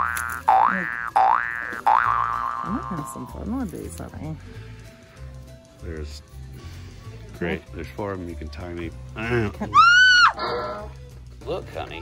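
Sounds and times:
cartoon boing sound effects: 0.0 - 2.8.

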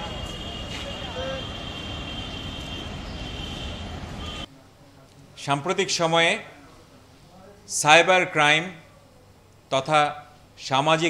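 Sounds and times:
traffic rumble: 0.0 - 7.8.

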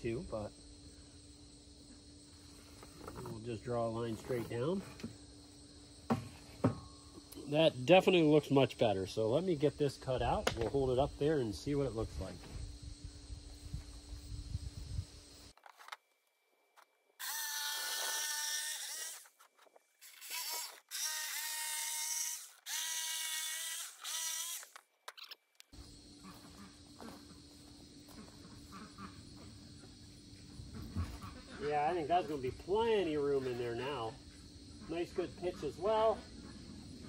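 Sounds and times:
jigsaw cutting wood: 17.2 - 19.3, 20.0 - 24.8.

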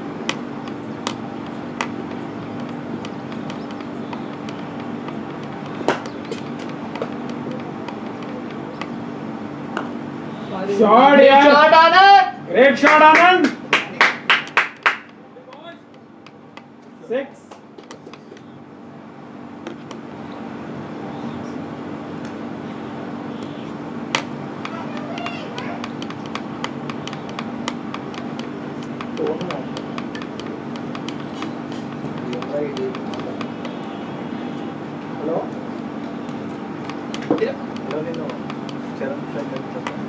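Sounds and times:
steady low hum: 0.0 - 40.0
scattered clicks: 0.2 - 9.0, 24.1 - 34.7
hand claps: 12.8 - 16.0.

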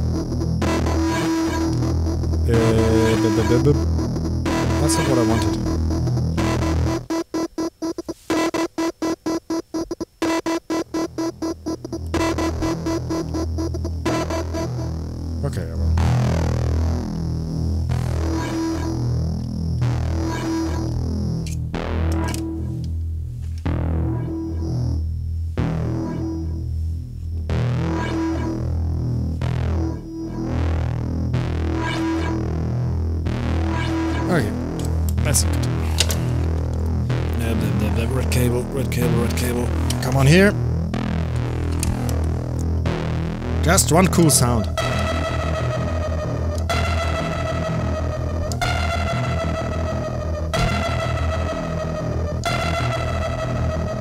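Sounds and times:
repeating short synth note: 0.0 - 7.2
crisp percussive ticks: 0.0 - 15.0, 33.8 - 37.4, 39.7 - 40.2, 41.0 - 43.0, 46.5 - 47.1, 48.4 - 49.3
fast stuttering synth pulse: 0.0 - 22.1, 25.6 - 26.6, 27.5 - 54.0
synthesizer bass pulse: 0.0 - 54.0.

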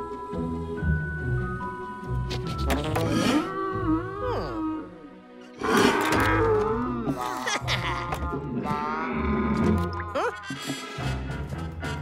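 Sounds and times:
light cartoon music: 0.0 - 12.0.

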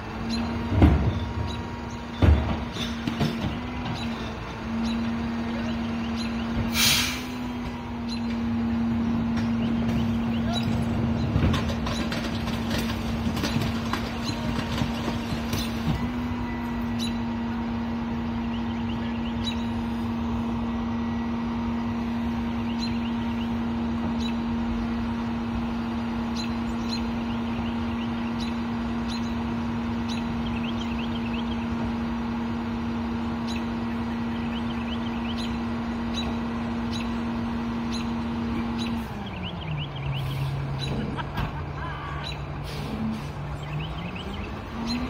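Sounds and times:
garbage truck engine humming: 0.0 - 45.0.

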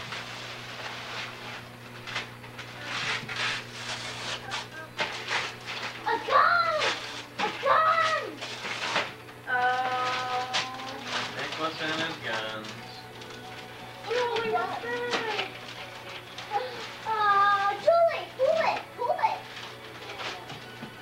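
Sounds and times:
wrapping paper rustling and tearing: 0.0 - 21.0.

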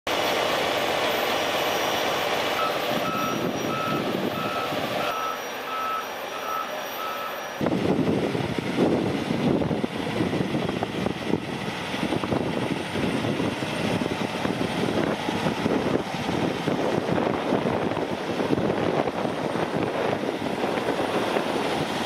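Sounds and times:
diesel engine rumbling: 0.1 - 22.0
truck reversing alarm beeping: 2.5 - 7.7.

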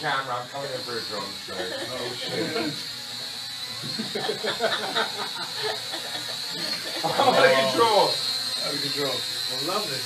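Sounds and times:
drone propellers whining: 0.0 - 10.0
people laughing: 1.6 - 2.8, 3.8 - 8.0.

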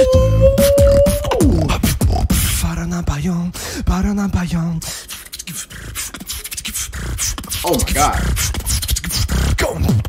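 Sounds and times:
beatboxing clicks and hisses: 0.0 - 10.0.

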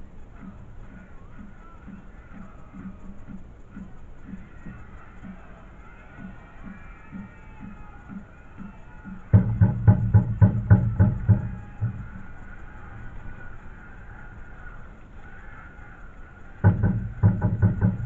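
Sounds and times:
drum beaten in quick runs: 0.0 - 18.0.

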